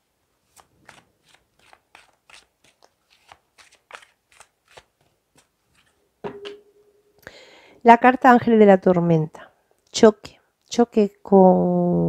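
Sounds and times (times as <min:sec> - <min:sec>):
cards being shuffled: 0:00.5 - 0:05.9.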